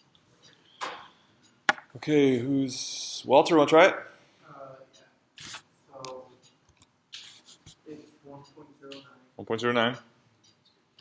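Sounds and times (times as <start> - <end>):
people talking: 2.0 - 5.0, 5.9 - 6.4, 7.8 - 10.1.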